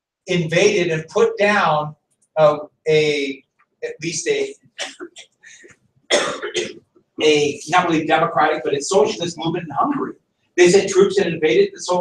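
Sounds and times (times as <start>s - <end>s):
man coughing: 4.1s - 5.2s, 6.1s - 8.1s.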